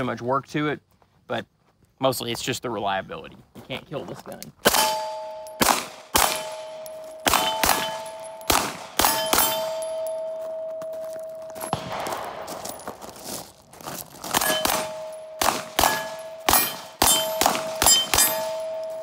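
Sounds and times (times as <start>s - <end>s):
pistol shots: 4.6s - 10.1s, 11.7s - 12.8s, 14.3s - 19.0s
steel plates ringing: 4.7s - 11.8s, 14.4s - 19.0s.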